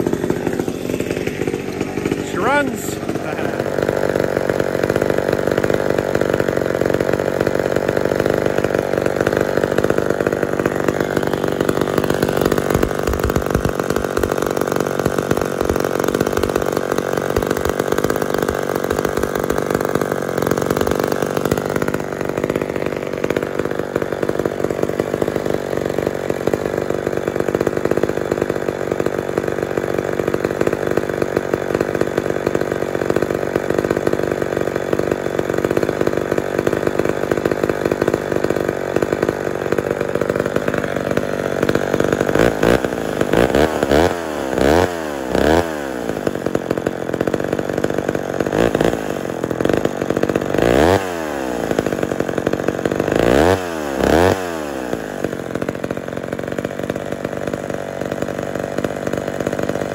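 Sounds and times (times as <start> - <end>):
chainsaw idling: 0.0 - 59.9.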